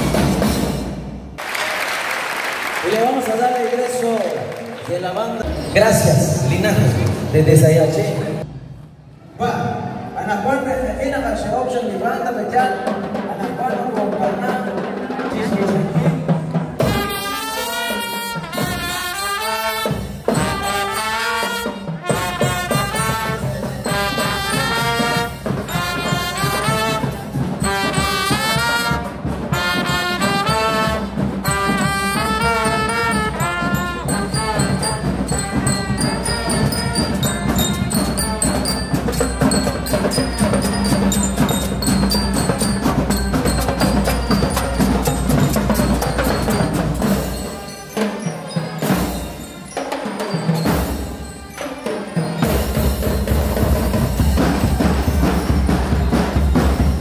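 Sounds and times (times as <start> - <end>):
marching drums: 0.0 - 3.0, 12.8 - 57.0
trumpets and trombones: 14.7 - 57.0.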